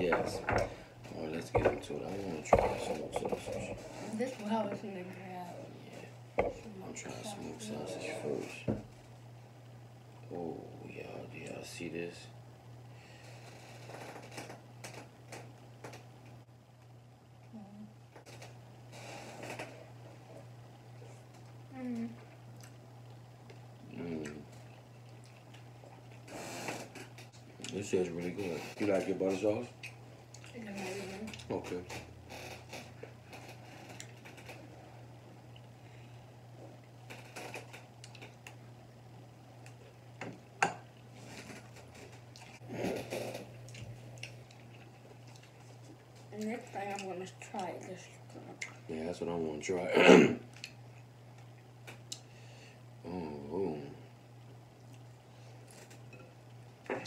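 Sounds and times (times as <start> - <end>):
steady low hum: 0.0 - 57.0
chewing and lip smacking: 22.3 - 26.3, 38.0 - 38.6, 43.6 - 46.1
wet sticky clicking of food: 50.5 - 52.2.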